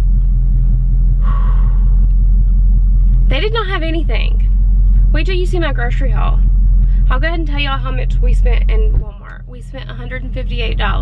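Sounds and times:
car engine idling: 0.0 - 11.0
breathy exhale: 1.2 - 2.1.

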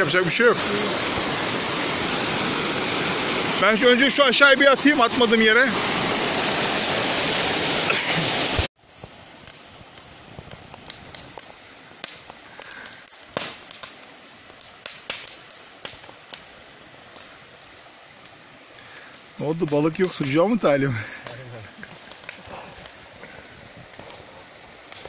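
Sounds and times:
campfire crackling and popping: 0.0 - 25.0
rushing stream water: 0.0 - 25.0.

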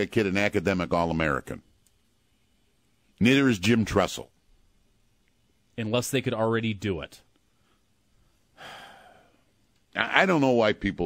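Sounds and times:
man sighing: 8.6 - 9.4.

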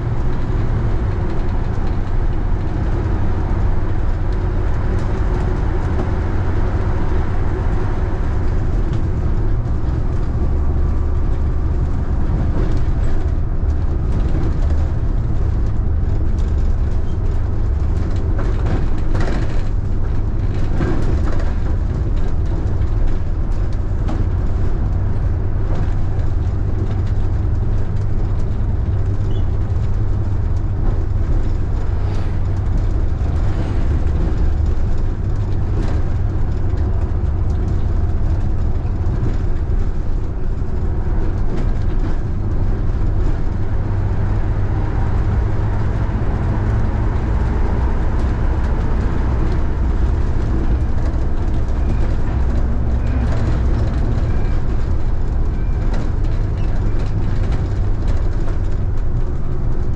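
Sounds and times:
bus engine drone: 0.0 - 59.9
road noise: 0.0 - 59.9.

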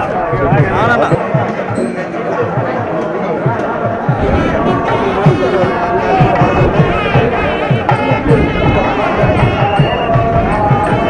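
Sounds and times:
steady drum beat: 0.0 - 11.0
double-reed pipe melody: 1.0 - 11.0.

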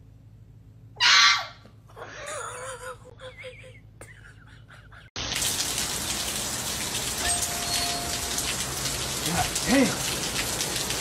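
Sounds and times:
puppy barking: 1.0 - 1.6.

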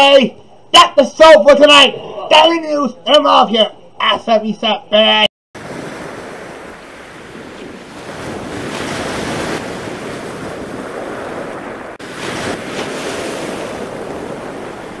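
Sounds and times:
rushing surf: 5.6 - 15.0
wind buffeting microphone: 5.6 - 15.0.

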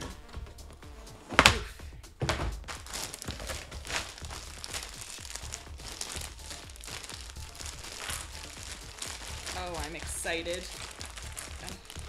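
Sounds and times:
plastic bag crinkling: 2.6 - 12.0
person speaking: 9.4 - 12.0.

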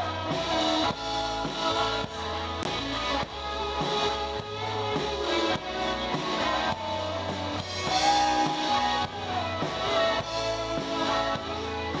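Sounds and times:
bass: 0.0 - 12.0
electric guitars: 0.0 - 12.0
steady drum beat: 0.0 - 12.0.

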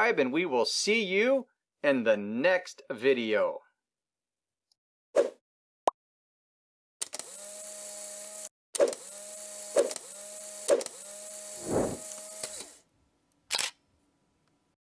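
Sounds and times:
motorized whir: 7.0 - 12.8
low whoosh: 11.6 - 12.0
camera shutter clicks: 12.0 - 12.7, 13.5 - 13.8.

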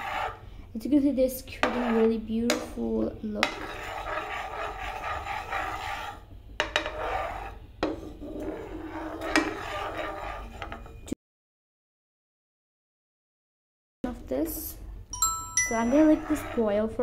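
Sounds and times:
spatula scraping metal pan: 0.0 - 0.5, 1.3 - 11.1, 15.7 - 17.0
spatula knocking against pan: 2.4 - 2.8.

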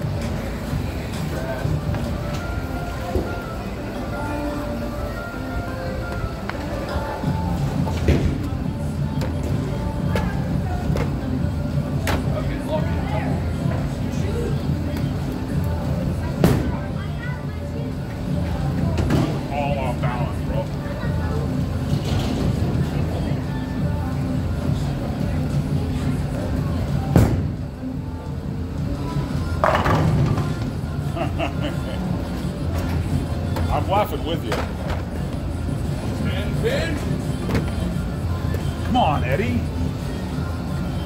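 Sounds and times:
background music: 0.0 - 41.0
people's voices: 0.0 - 41.0.

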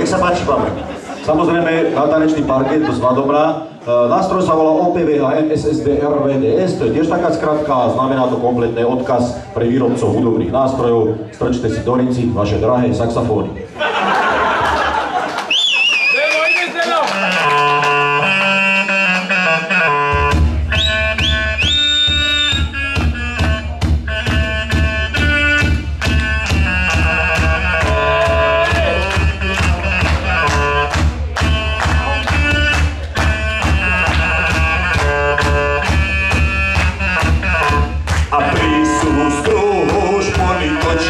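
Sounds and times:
band beat and bass: 17.0 - 41.0
saxophone melody: 17.1 - 41.0.

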